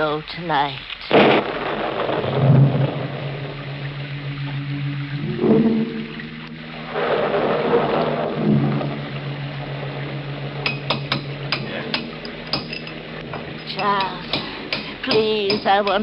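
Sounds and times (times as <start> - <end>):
sustained organ-like chords: 1.1 - 15.6.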